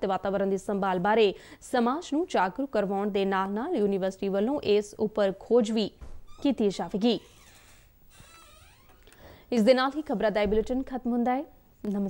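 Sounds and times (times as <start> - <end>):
woman speaking: 0.0 - 7.3, 9.5 - 12.0.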